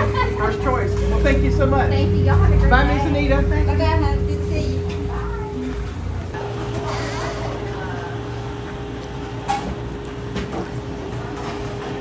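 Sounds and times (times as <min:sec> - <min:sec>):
machine hum with constant tone: 0:00.0 - 0:12.0.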